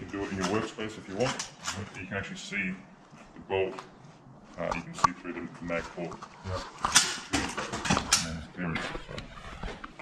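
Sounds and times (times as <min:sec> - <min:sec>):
low talk: 0:00.0 - 0:06.8, 0:07.9 - 0:09.3.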